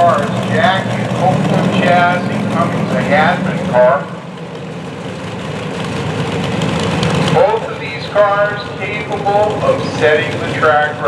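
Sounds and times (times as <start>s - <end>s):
outdoor background noise: 0.0s - 11.0s
vehicle engine idling: 0.0s - 11.0s.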